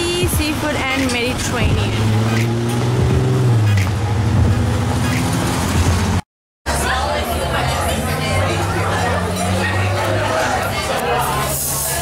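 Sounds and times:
low engine hum: 0.0 - 11.2
street traffic: 0.0 - 12.0
babble of voices in a restaurant: 6.7 - 12.0.

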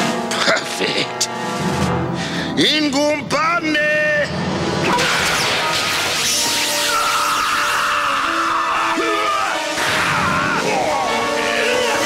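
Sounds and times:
dramatic cartoon music: 0.0 - 12.0
man talking: 2.6 - 4.3.

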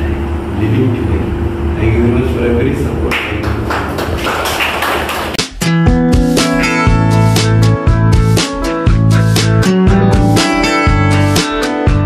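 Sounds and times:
people clapping in rhythm: 3.1 - 5.8.

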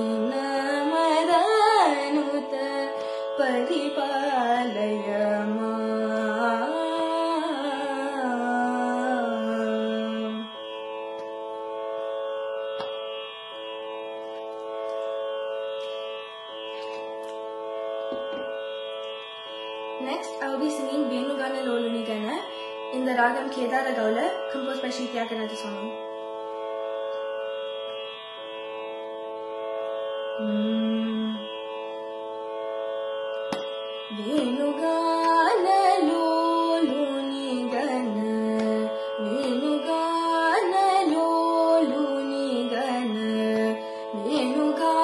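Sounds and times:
woman singing: 0.0 - 10.5, 20.0 - 26.0, 30.4 - 31.5, 34.1 - 45.0
tanpura drone: 0.0 - 45.0
person singing: 30.4 - 31.6, 34.1 - 45.0.

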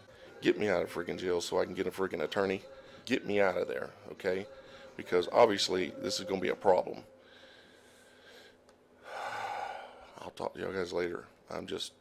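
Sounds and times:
man breathing heavily: 4.5 - 5.0, 7.1 - 10.2.

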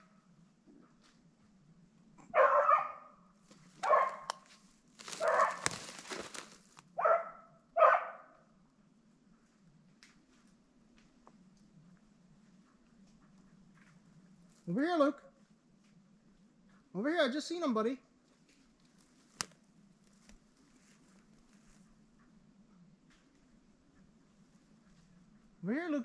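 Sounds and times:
dog barking: 2.2 - 3.2, 3.8 - 4.4, 5.1 - 5.7, 7.0 - 8.4.

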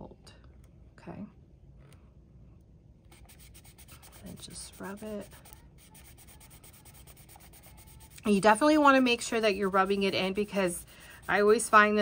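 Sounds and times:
fingertips rubbing paper: 3.1 - 12.0.

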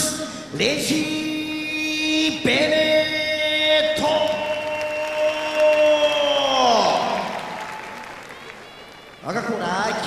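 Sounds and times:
ring announcer calling out: 0.0 - 7.6
crowd applause: 4.2 - 10.0.

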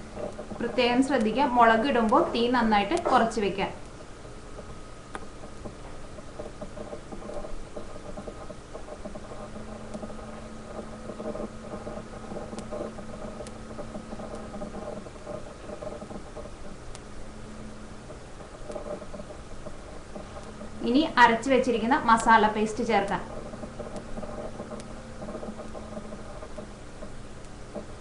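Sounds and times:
constant hum: 0.0 - 28.0.

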